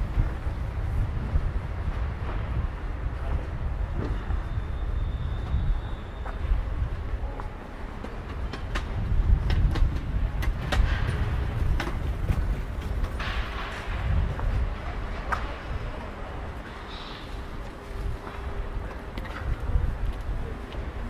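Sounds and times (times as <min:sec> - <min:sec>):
low street rumble: 0:00.0 - 0:21.0.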